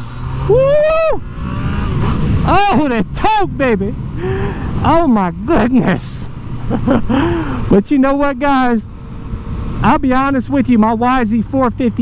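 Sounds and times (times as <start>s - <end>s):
motorcycle engine accelerating: 0.0s - 7.7s
rider whooping: 0.4s - 2.9s.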